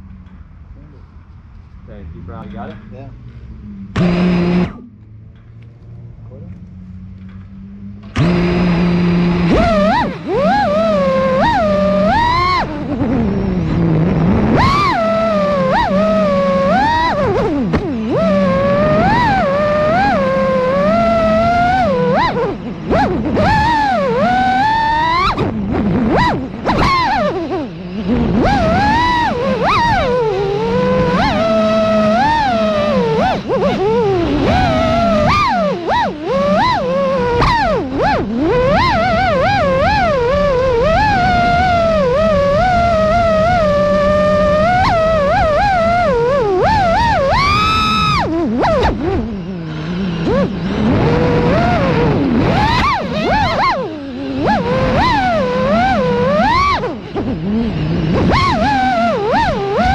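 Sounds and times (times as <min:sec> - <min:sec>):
drone motors whining: 0:00.0 - 0:59.9.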